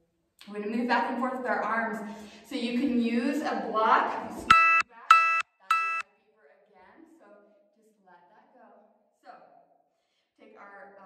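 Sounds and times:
short electronic beeps: 0:04.5 - 0:06.0.

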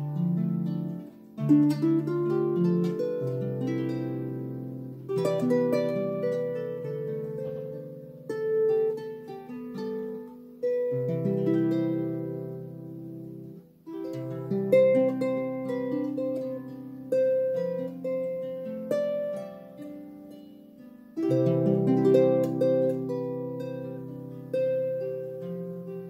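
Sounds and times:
harp playing: 0:00.0 - 0:26.0.

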